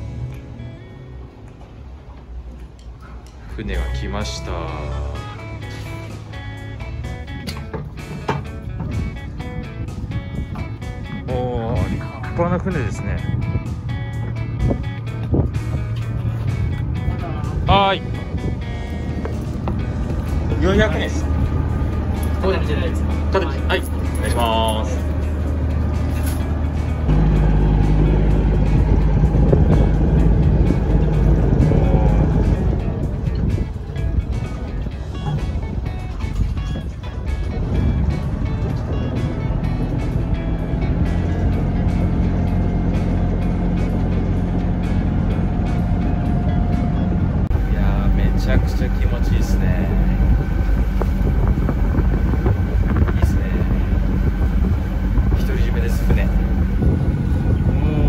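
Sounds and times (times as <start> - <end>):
boat engine running: 0.0 - 58.0.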